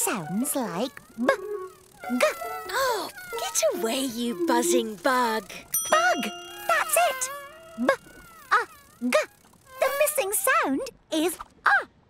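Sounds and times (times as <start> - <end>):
held background music note: 5.8 - 7.9.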